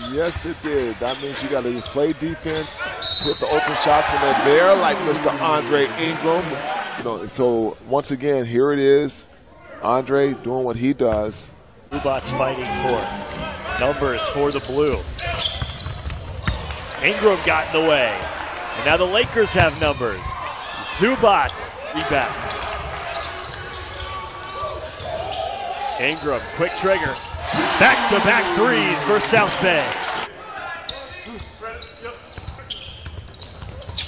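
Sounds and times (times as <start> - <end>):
arena crowd noise: 0.0 - 32.8.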